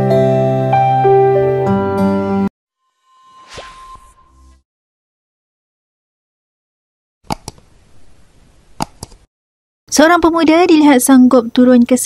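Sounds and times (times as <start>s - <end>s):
whoosh with falling tone: 2.9s - 4.6s.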